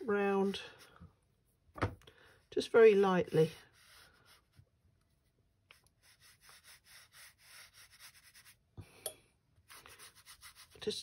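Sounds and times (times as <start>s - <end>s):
brush strokes on paper: 2.3s - 8.7s, 9.6s - 11.0s.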